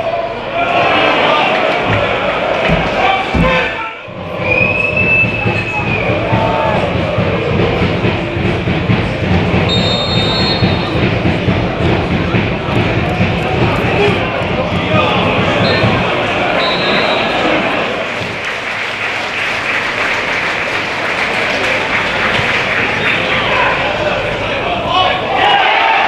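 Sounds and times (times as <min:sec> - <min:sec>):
players shouting: 0:00.0 - 0:18.3, 0:21.3 - 0:26.0
crowd voices: 0:00.0 - 0:26.0
referee's whistle: 0:09.7 - 0:10.9, 0:15.6 - 0:17.5.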